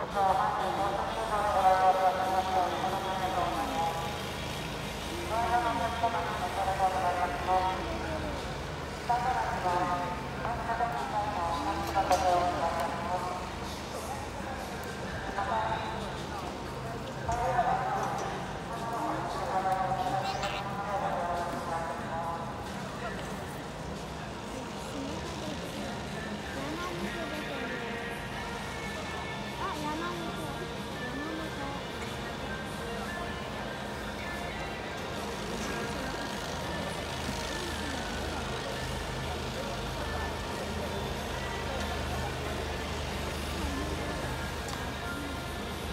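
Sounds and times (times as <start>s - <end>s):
ballpark crowd din: 0.0s - 45.9s.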